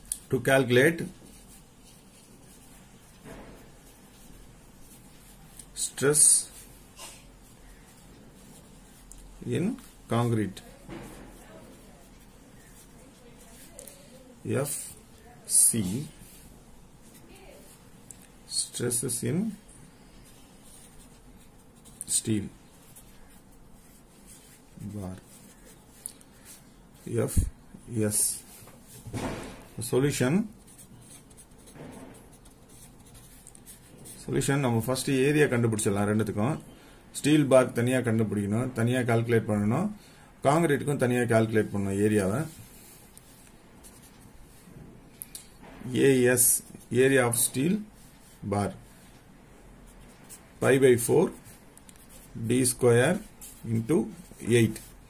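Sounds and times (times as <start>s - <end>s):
man speaking: 0.3s - 1.2s, 5.8s - 6.6s, 9.4s - 10.7s, 14.4s - 16.2s, 18.5s - 19.6s, 22.0s - 22.6s, 24.8s - 25.4s, 27.0s - 28.6s, 37.2s - 42.7s, 45.9s - 48.9s, 50.6s - 51.5s, 52.2s - 54.9s
pen scratching on paper: 1.0s - 17.8s, 19.9s - 27.5s, 30.5s - 34.2s, 49.9s - 55.0s.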